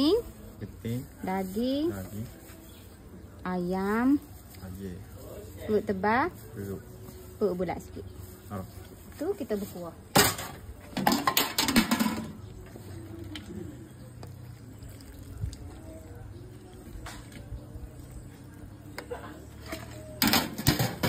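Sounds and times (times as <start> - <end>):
metal ladle clattering against pot: 10.2 - 12.4.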